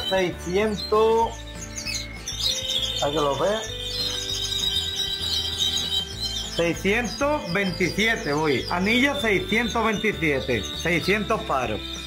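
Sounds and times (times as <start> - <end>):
canaries trilling: 0.0 - 12.0.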